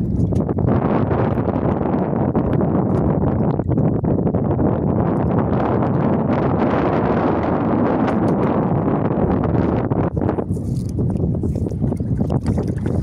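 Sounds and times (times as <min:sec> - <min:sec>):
wind rumbling on microphone: 0:00.0 - 0:13.0.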